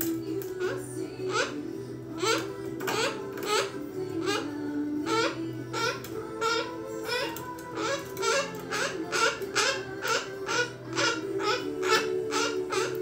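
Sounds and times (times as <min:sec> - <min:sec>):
background music: 0:00.0 - 0:13.0
cockatoo calling: 0:00.6 - 0:13.0.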